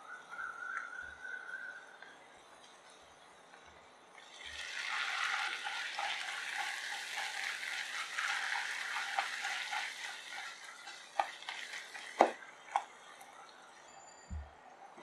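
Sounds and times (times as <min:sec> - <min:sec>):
masala sizzling in oil: 0:04.2 - 0:13.0.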